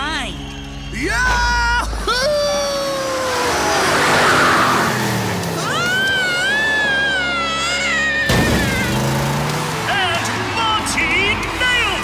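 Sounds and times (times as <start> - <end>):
cartoon truck engine: 1.9 - 12.0.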